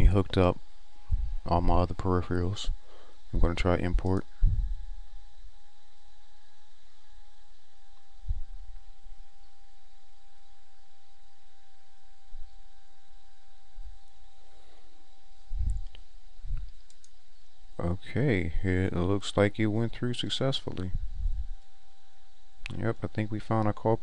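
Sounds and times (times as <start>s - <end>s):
faint thin whine: 0.0s - 24.0s
steady low hum: 0.0s - 24.0s
soft low thumps: 1.0s - 1.6s, 3.3s - 5.1s, 8.2s - 8.8s, 15.4s - 16.8s, 20.8s - 21.6s
faint clicks: 15.7s - 17.2s.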